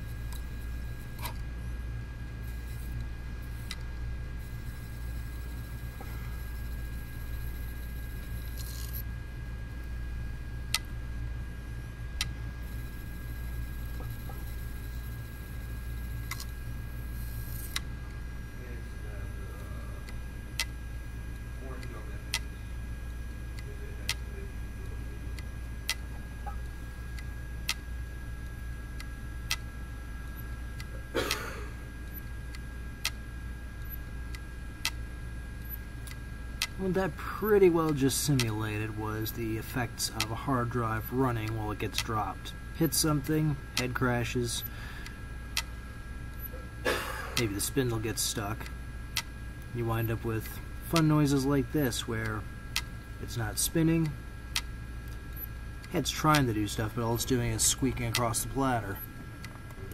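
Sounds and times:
hard drive motor humming: 0.0 - 59.9.

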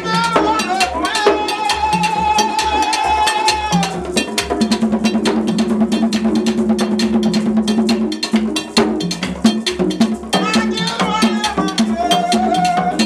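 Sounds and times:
fast drumming: 0.0 - 13.0.

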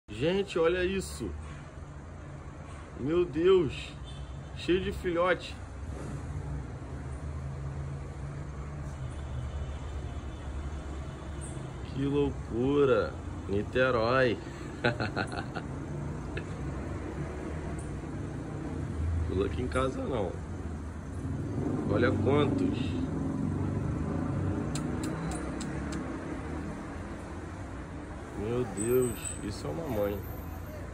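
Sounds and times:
street traffic noise: 0.0 - 30.9.

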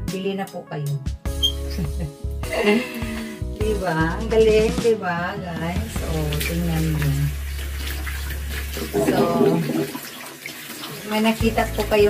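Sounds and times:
tap running into sink: 5.9 - 11.1.

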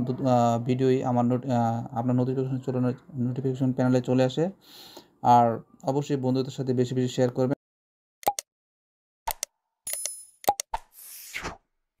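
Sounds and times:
short pops and clicks: 8.2 - 8.5, 9.3 - 11.6.

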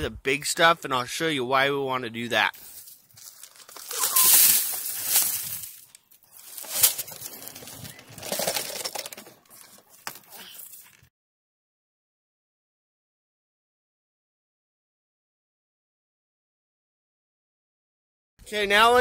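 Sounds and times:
gravel poured onto a screen: 2.6 - 7.1.

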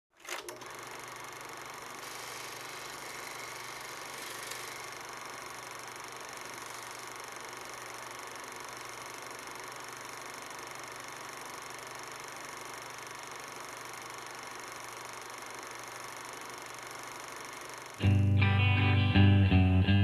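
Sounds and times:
mechanical whirring: 0.2 - 18.0.

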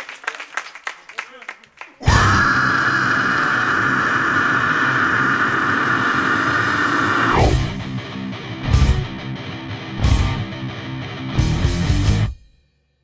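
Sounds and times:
distorted sustained blast: 2.0 - 8.0
low pulses: 2.0 - 8.0.

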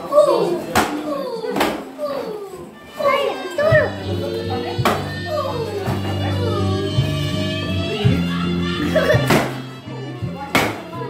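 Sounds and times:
children shouting and squealing: 0.0 - 9.8
stick whacking pinata: 0.7 - 1.9, 4.8 - 5.1, 9.2 - 9.6, 10.5 - 11.0
background music: 2.0 - 11.0.

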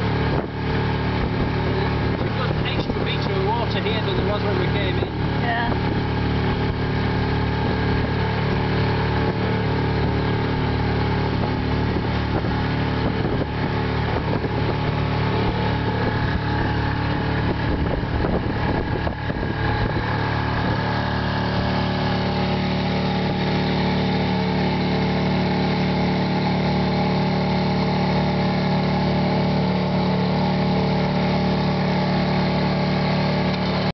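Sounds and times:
boat engine running: 0.0 - 33.9.

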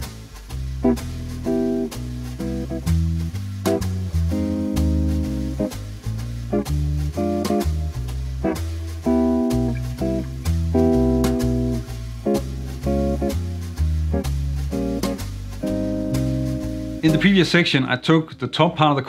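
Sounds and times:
electric jazz guitar chords: 0.0 - 18.4
bass line: 0.0 - 19.0.

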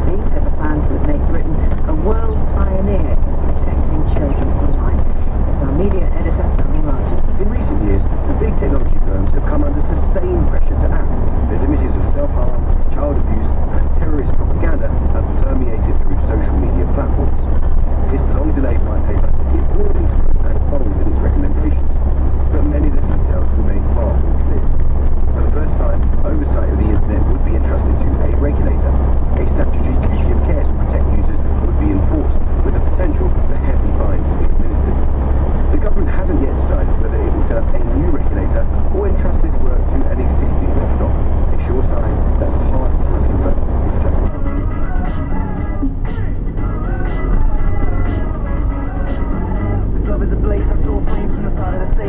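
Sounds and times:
muffled radio talk: 0.0 - 24.8, 25.4 - 35.1, 35.7 - 44.4, 49.8 - 52.0
van engine and tyres rumbling: 0.0 - 52.0.

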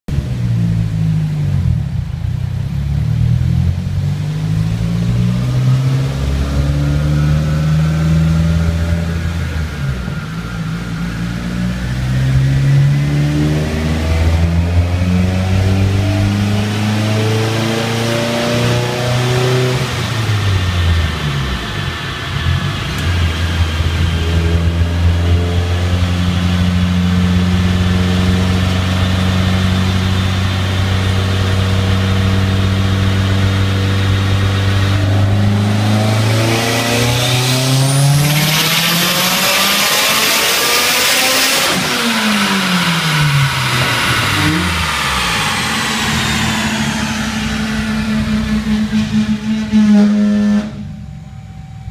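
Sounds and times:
car engine on dyno: 0.1 - 51.9
high turbo whine: 0.1 - 51.9.

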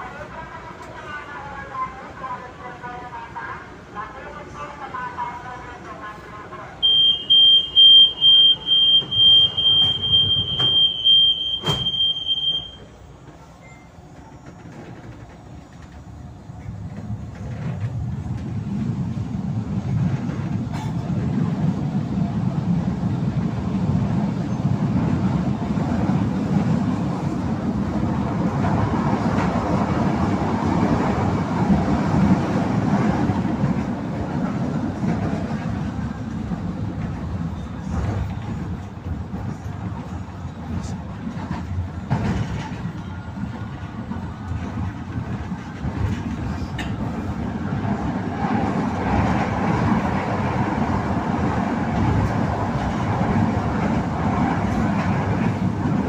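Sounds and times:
train rumble and wheel noise: 0.0 - 56.0
train door warning beeping: 6.8 - 14.9.

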